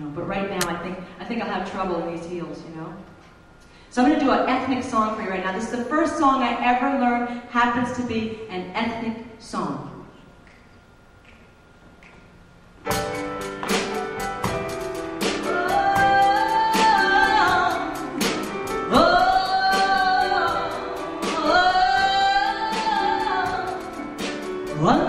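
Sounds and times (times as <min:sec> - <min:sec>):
percussive strikes: 0:12.9 - 0:19.0
live music: 0:12.9 - 0:25.0
woman singing into a microphone: 0:15.3 - 0:24.0, 0:24.7 - 0:25.0.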